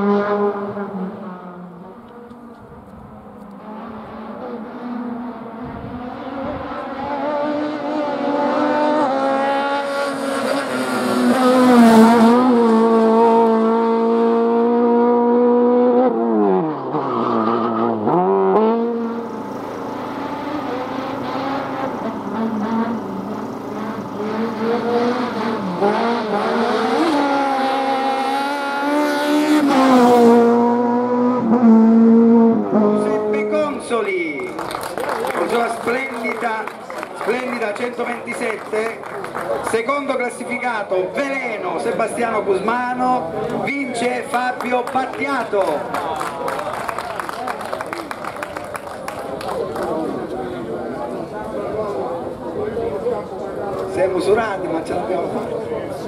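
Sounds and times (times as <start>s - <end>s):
race car engine revving: 0.0s - 40.4s.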